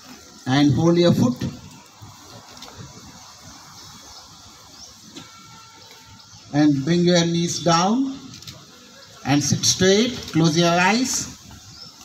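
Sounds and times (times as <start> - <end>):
outdoor ambience hiss: 0.0 - 12.0.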